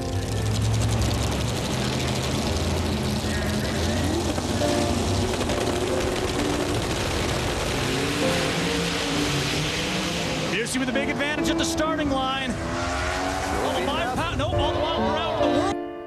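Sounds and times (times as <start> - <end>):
background music: 0.0 - 1.4, 2.5 - 16.0
drag racing engines: 0.0 - 15.4.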